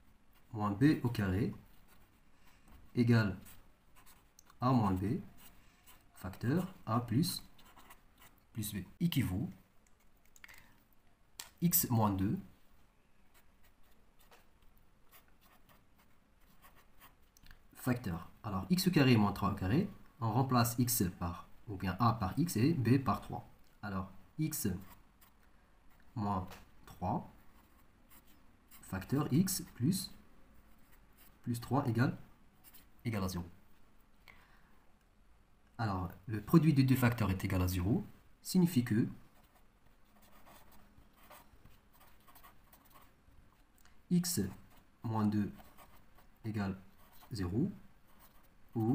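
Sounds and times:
marker scratching on paper: 1.5s - 8.4s, 13.3s - 17.2s, 39.3s - 43.6s, 44.4s - 48.9s.

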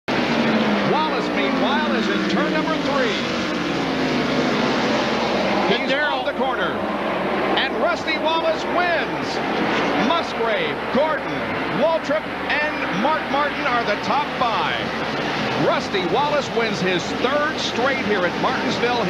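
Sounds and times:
race car engines passing by: 0.1s - 19.0s.

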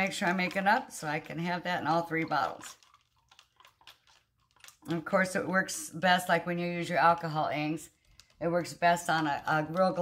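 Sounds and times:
stirrer clicking against a cup: 0.0s - 5.0s.

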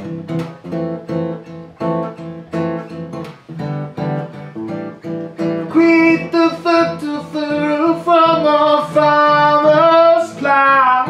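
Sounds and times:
acoustic guitar strumming: 0.0s - 11.0s
high wordless singing: 5.6s - 11.0s.

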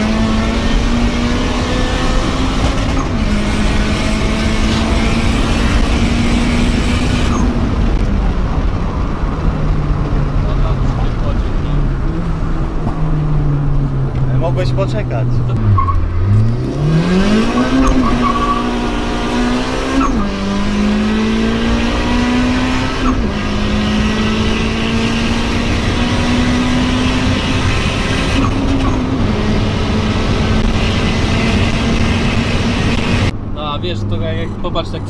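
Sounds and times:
gear upshifts: 0.0s - 34.7s
car engine revving at full throttle: 0.0s - 35.0s
road and wind noise: 0.0s - 35.0s.

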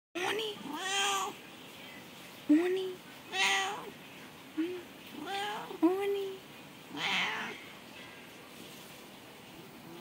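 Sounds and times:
cat meowing: 0.2s - 1.4s, 3.3s - 4.0s, 5.1s - 5.8s, 6.9s - 7.6s.

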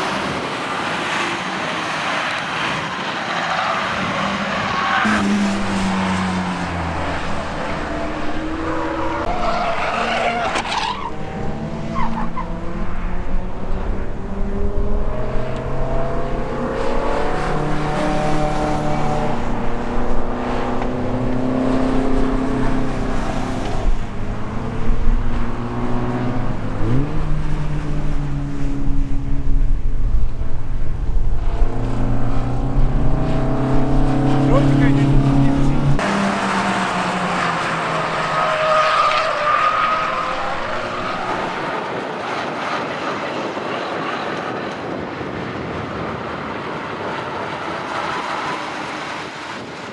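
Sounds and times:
racing car engines passing: 0.0s - 49.9s.

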